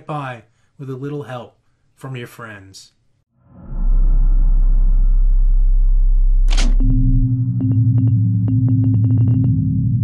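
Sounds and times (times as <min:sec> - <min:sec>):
sharp crackling clicks: 0:06.5 - 0:06.8.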